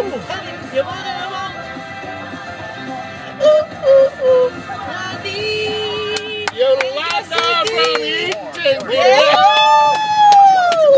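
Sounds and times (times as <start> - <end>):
recorded pop music: 0.0 - 10.9.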